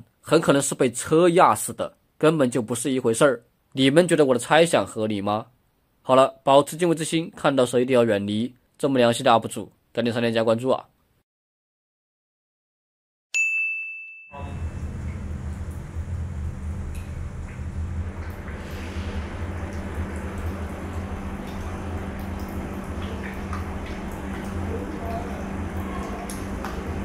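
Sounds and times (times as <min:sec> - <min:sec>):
bell-like ding: 0:13.4 - 0:14.6
low electrical hum: 0:14.4 - 0:27.0.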